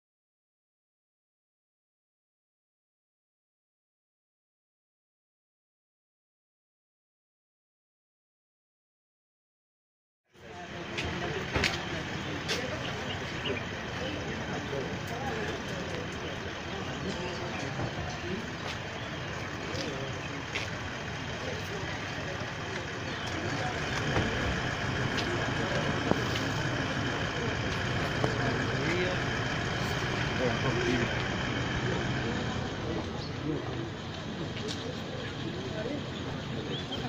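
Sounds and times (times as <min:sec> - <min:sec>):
steady low rumble: 0:10.4 - 0:36.8
crowd talking: 0:10.4 - 0:37.0.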